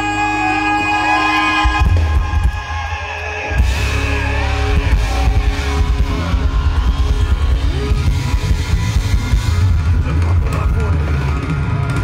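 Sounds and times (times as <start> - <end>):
live band playing loud music: 0.0 - 12.0.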